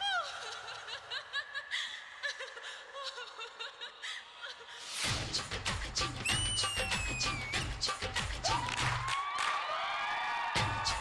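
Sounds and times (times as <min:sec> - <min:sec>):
woman giggling: 0:00.0 - 0:04.8.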